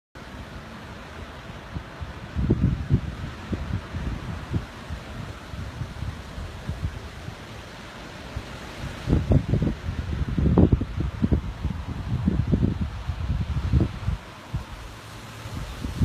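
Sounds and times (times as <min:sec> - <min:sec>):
wind buffeting microphone: 0:01.2 - 0:16.0.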